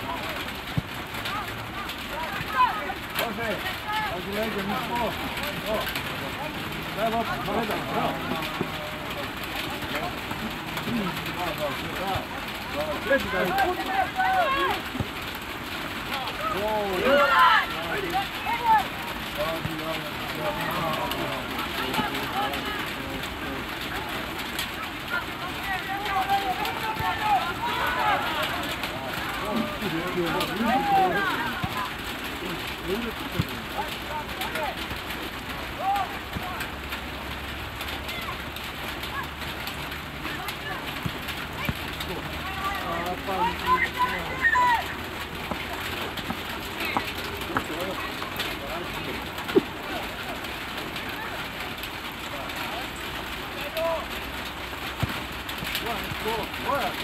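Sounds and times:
people shouting and calling out: 0:00.0 - 0:36.8, 0:37.8 - 0:39.5, 0:40.2 - 0:54.2
steady outdoor hiss: 0:00.0 - 0:57.0.

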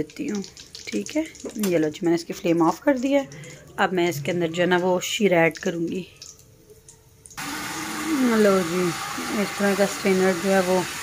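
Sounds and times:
sizzling hiss of hot oil: 0:07.4 - 0:11.0.

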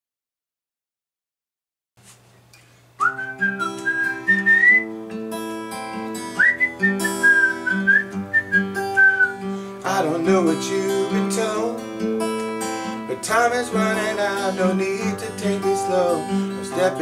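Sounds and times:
fingerpicked acoustic guitar: 0:02.9 - 0:17.0
whistled melody: 0:03.0 - 0:05.0, 0:06.3 - 0:09.5.

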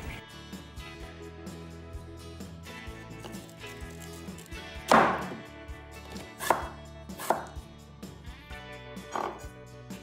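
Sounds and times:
knife chopping on wooden board: 0:04.8 - 0:05.4, 0:06.1 - 0:07.6.

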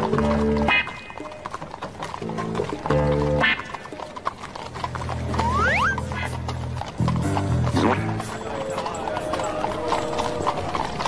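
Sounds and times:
background music: 0:00.0 - 0:11.0
horse hooves clip-clopping: 0:00.0 - 0:11.0
horse neighing: 0:05.1 - 0:08.2.

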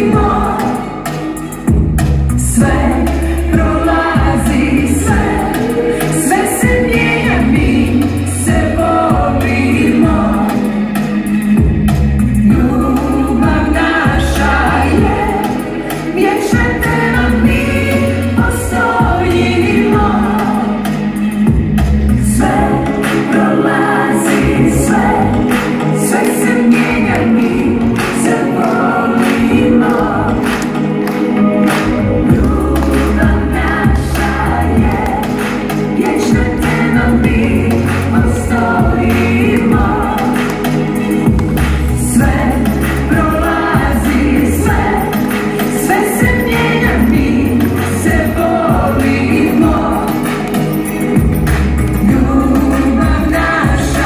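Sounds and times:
woman singing: 0:00.0 - 0:01.4, 0:02.4 - 0:10.9, 0:12.4 - 0:21.6, 0:22.2 - 0:54.0
bass guitar: 0:00.0 - 0:15.9, 0:16.5 - 0:54.0
drums: 0:00.0 - 0:54.0
keyboard: 0:00.0 - 0:54.0
bass guitar line: 0:01.7 - 0:10.4, 0:29.4 - 0:45.4.

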